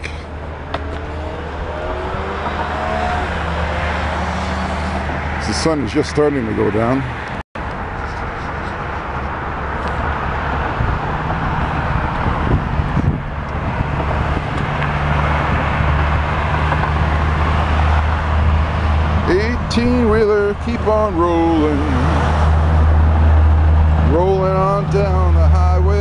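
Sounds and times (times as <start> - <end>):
highway traffic noise: 0.0 - 26.0
truck engine drone: 0.0 - 26.0.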